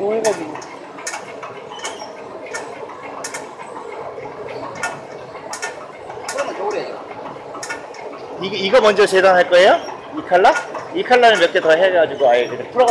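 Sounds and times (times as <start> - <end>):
machine humming: 0.0 - 12.9
sharp machine clicks: 0.0 - 12.9.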